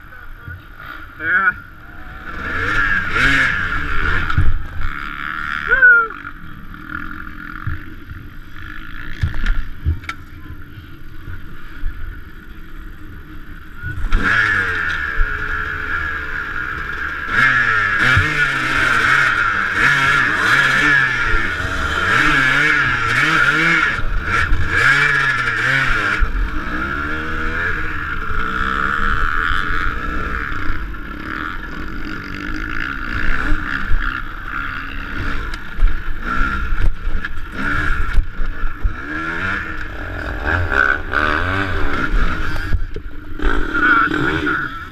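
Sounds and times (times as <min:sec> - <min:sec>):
dirt bike engine revving: 0:00.0 - 0:09.9, 0:10.6 - 0:44.9.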